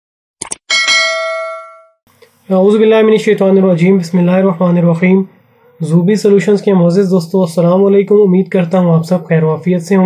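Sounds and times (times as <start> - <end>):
bright bell chime: 0.7 - 2.0.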